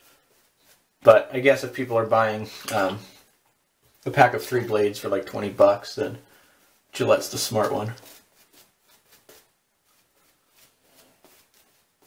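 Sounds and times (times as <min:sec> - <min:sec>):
shaving brush swishing lather: 0:00.0 - 0:02.6, 0:04.2 - 0:12.0.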